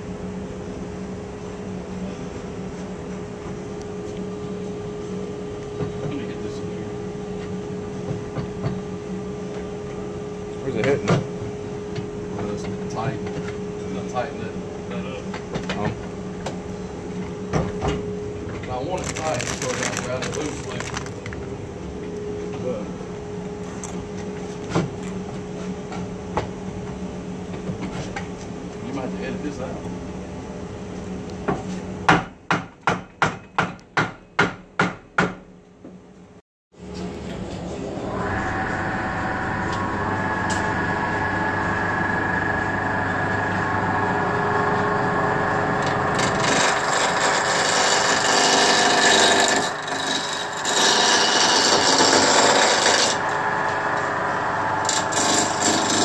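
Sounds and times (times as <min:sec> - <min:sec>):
dust collector humming: 0:00.0 - 0:27.5, 0:36.8 - 0:56.0
sharp hammer-like knocks: 0:32.1 - 0:35.4.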